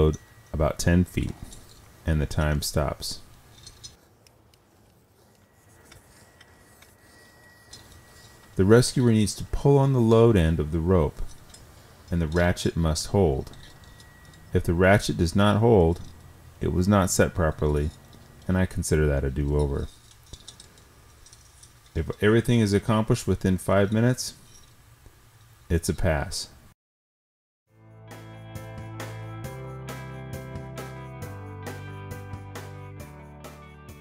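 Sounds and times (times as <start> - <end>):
pulleys and carabiners ticking: 5.3 - 24.8.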